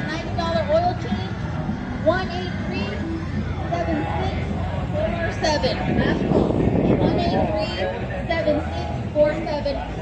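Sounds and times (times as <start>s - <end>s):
people talking: 0.0s - 1.4s, 2.0s - 10.0s
low outdoor rumble: 0.0s - 10.0s.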